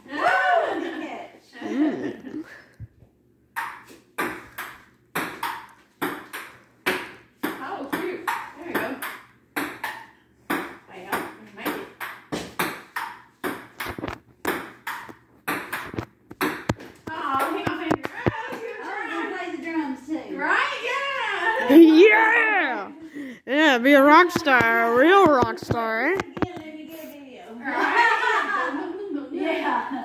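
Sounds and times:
ping pong ball hits: 3.6 - 18.4.

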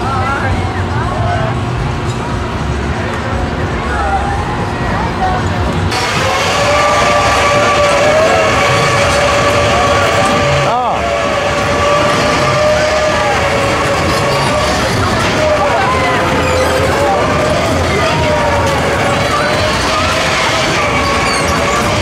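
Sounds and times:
ride machinery whining: 0.0 - 22.0.

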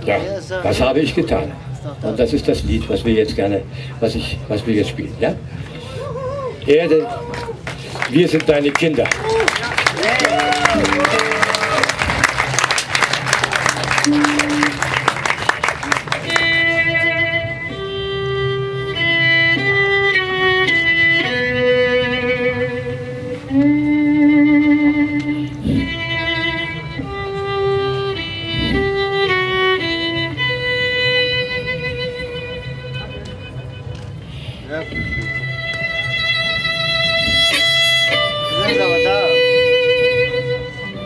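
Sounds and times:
audience clapping: 7.3 - 16.6
violin slow melody with vibrato: 13.9 - 41.0.

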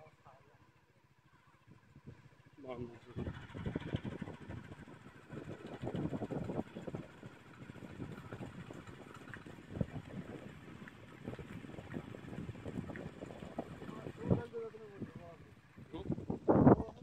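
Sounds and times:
wind buffeting microphone: 3.0 - 17.0.

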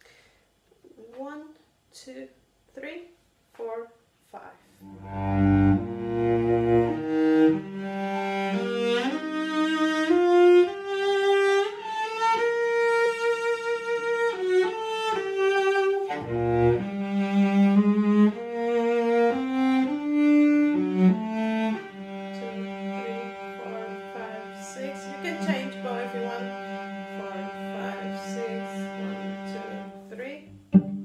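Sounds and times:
bowed double bass melody: 4.8 - 31.0.

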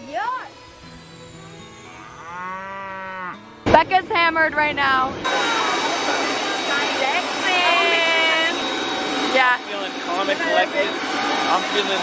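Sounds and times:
jet engine whine: 0.0 - 2.2, 4.9 - 12.0.

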